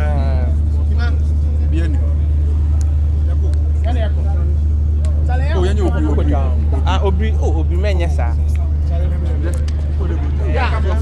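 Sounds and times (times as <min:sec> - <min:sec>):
loud low hum: 0:00.0 - 0:11.0
men talking: 0:00.0 - 0:11.0.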